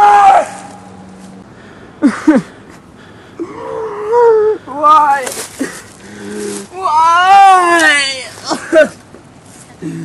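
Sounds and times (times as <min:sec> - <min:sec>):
boy wailing: 0:03.4 - 0:05.2, 0:06.7 - 0:08.9.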